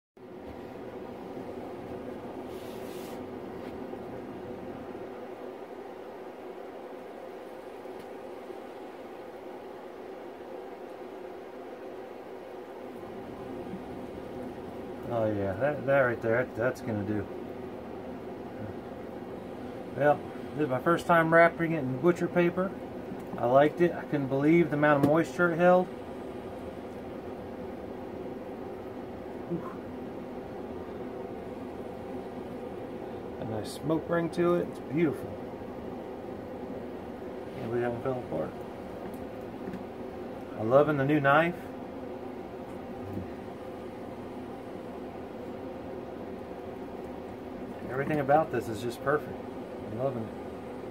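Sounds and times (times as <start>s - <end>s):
low background hum: 0.2s - 50.9s
brief hiss: 2.5s - 3.3s.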